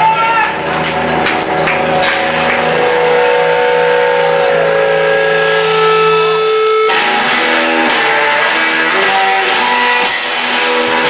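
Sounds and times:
low bass note: 1.8s - 7.6s
blues band sustained note: 1.8s - 11.0s
drum and cymbal strokes: 10.0s - 11.0s.

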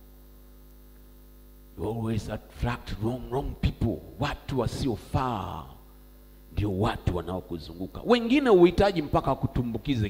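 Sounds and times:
electrical mains hum: 0.0s - 10.0s
man speaking: 1.8s - 5.8s, 6.5s - 10.0s.

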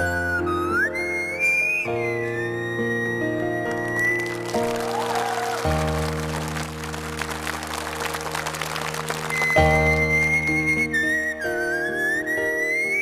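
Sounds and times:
instrumental backing music: 0.0s - 13.0s
audience applause: 3.8s - 10.4s.

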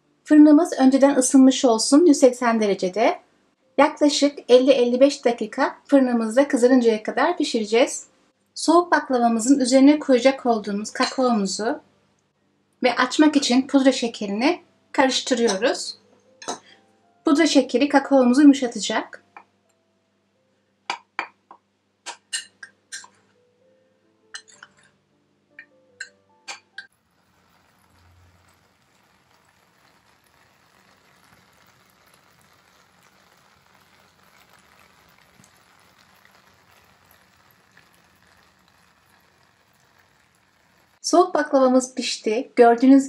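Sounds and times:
faint steady hiss: 26.8s - 41.2s.

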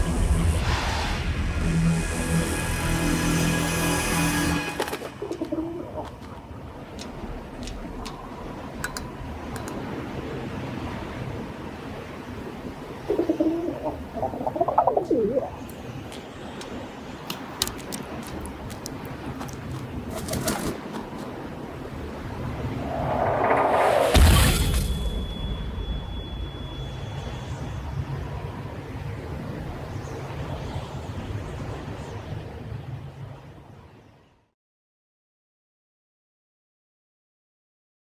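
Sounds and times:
low rumbling drone: 0.0s - 4.8s, 22.5s - 28.0s
steady background noise: 0.0s - 34.5s
dove cooing: 5.2s - 6.2s, 13.1s - 15.6s
high ringing tone: 24.2s - 28.0s.

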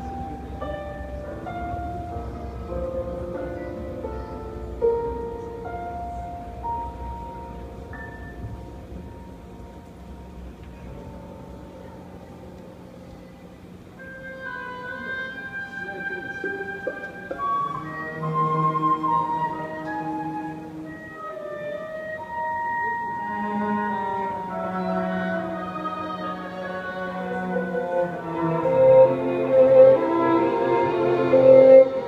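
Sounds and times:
low room rumble: 0.0s - 32.0s
quiet ensemble music with piano: 0.0s - 32.0s.

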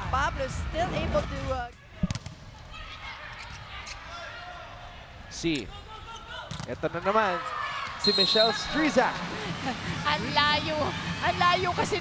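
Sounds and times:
arena crowd murmur: 7.1s - 12.0s.

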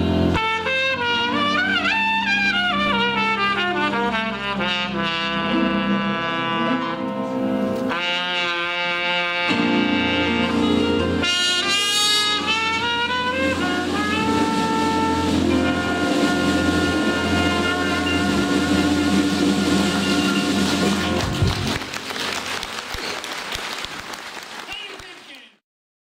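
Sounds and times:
double bass: 0.0s - 22.4s
trumpet: 0.0s - 22.7s
piano: 0.0s - 24.1s
drums: 8.0s - 24.1s
audience applause: 18.5s - 25.6s.

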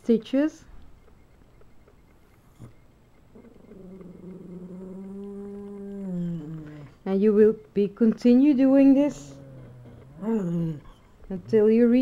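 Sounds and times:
long low animal call: 3.4s - 7.0s, 9.1s - 11.3s.

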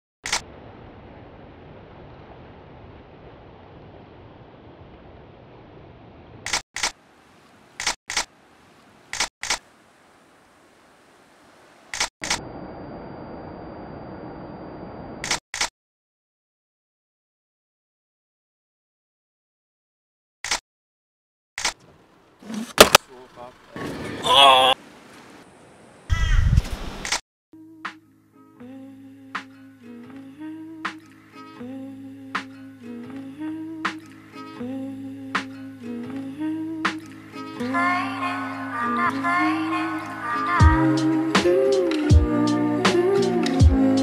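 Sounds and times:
camera shutter double clicks: 6.5s - 7.0s, 7.8s - 8.3s, 9.1s - 9.6s, 11.9s - 12.4s, 15.2s - 15.7s
crow cawing: 26.1s - 26.4s.

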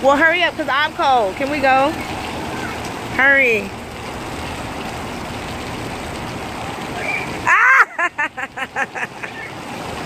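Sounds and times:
water jets spraying: 0.0s - 10.0s.

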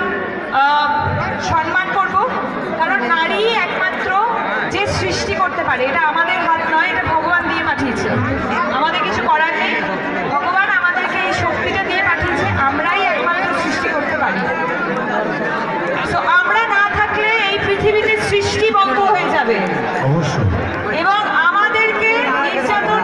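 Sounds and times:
crowd chatter: 0.0s - 23.0s.

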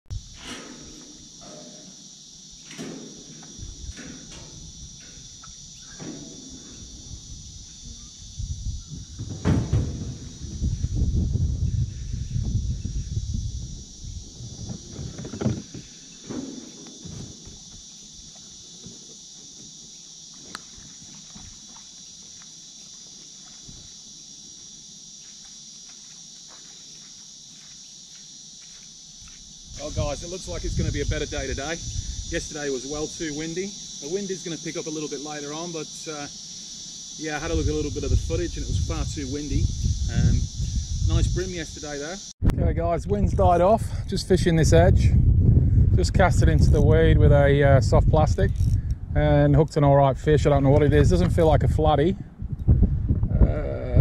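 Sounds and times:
insects droning: 0.1s - 54.0s
kayak scraping and rumbling: 14.1s - 17.7s.

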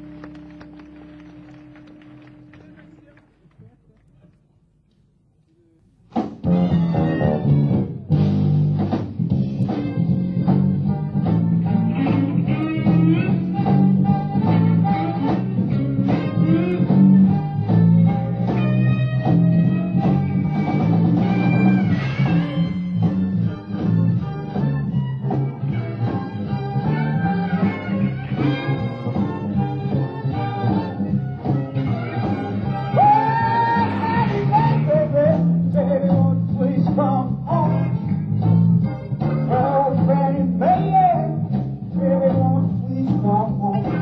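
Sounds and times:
live jazz-rock band playing: 6.1s - 44.0s.

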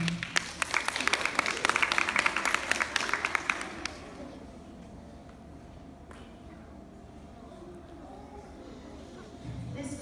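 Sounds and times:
audience applauding: 0.0s - 4.2s.

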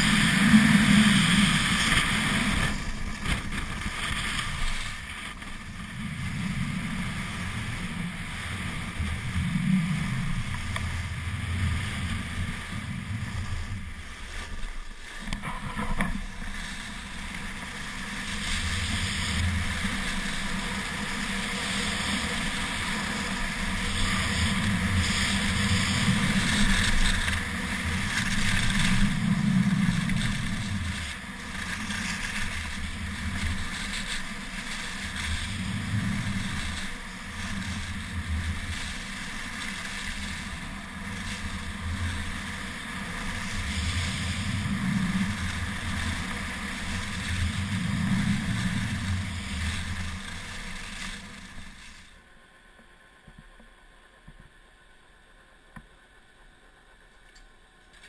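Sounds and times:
wind rumbling on microphone: 0.0s - 52.2s
skis sliding on snow: 0.0s - 52.5s.

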